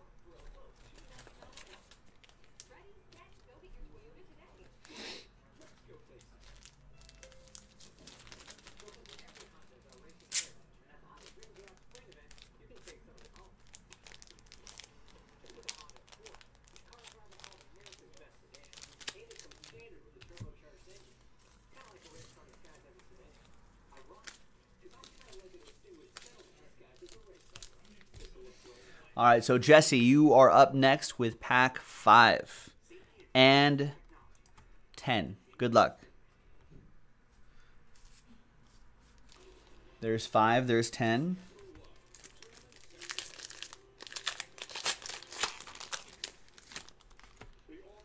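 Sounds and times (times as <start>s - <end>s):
paper and plastic rustling: 0.3s - 3.6s, 5.6s - 28.9s, 41.4s - 48.0s.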